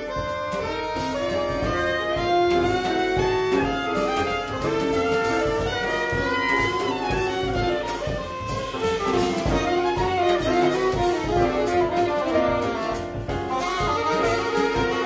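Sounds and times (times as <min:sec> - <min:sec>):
drum kit cymbals: 0:00.0 - 0:15.0
piano: 0:00.0 - 0:15.0
saxophones: 0:00.0 - 0:15.0
upright bass: 0:00.0 - 0:15.0.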